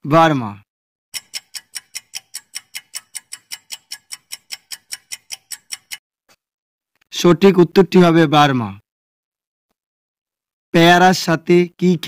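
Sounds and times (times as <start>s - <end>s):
countdown timer ticking: 1.2s - 6.0s.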